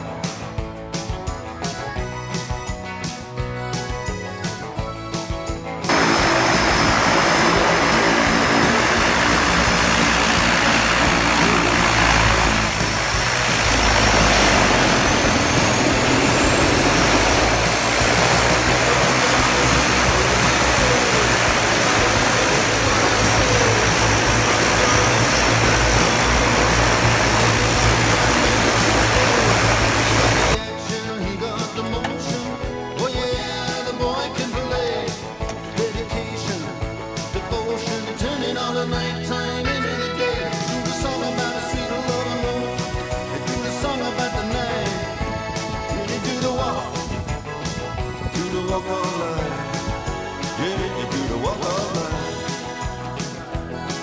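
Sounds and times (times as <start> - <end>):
plane engine and propeller roar: 5.1 - 30.6, 40.4 - 54.0.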